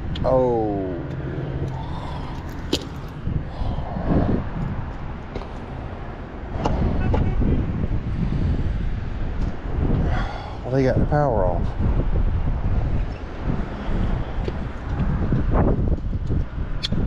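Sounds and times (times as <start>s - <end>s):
distant road traffic: 0.0s - 17.0s
wind: 0.0s - 17.0s.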